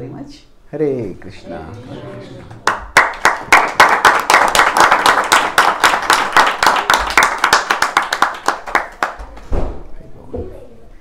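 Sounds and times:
audience applauding: 2.0s - 9.4s.

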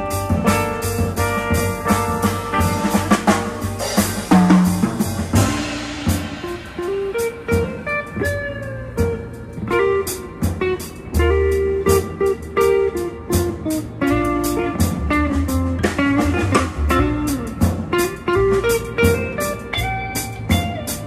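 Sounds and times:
bass: 0.0s - 21.0s
drum kit: 0.0s - 21.0s
electric guitar melody: 0.0s - 21.0s
cymbal and drum hits: 1.8s - 8.0s.

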